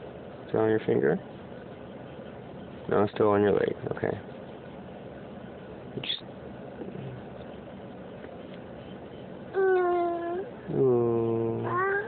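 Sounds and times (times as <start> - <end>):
toddler whimpering: 9.6 - 10.6, 11.6 - 12.0
adult humming questioning mmm: 9.6 - 12.0.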